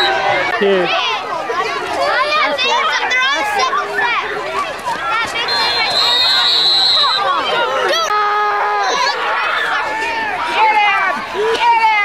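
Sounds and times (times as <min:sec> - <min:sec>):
spectators shouting: 0:00.0 - 0:12.0
referee's whistle blast: 0:05.4 - 0:07.3.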